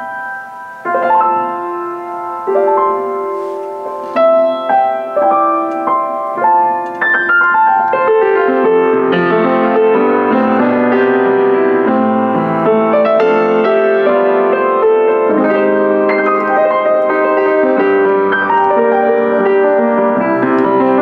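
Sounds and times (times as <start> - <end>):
upright piano playing chords: 0.0 - 21.0.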